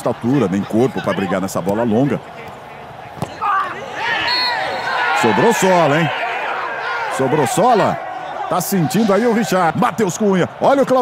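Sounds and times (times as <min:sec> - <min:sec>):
men shouting: 0:03.4 - 0:09.6.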